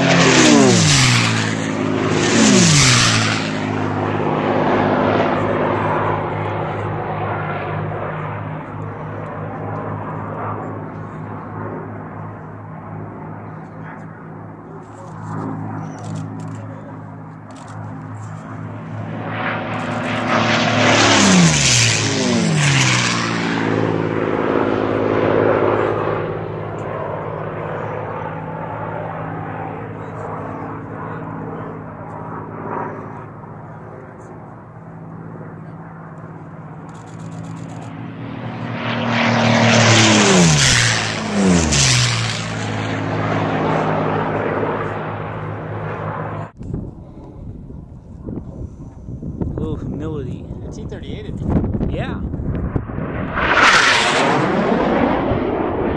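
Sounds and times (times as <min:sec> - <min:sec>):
racing aircraft passing low: 0:00.0 - 0:55.9
steady engine drone: 0:00.0 - 0:55.9.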